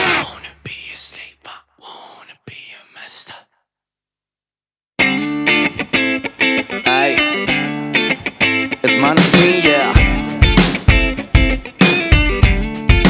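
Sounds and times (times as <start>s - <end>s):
faint whispers: 0.0s - 3.6s
distorted electric guitar rock: 5.0s - 13.0s
rock song: 5.0s - 13.0s.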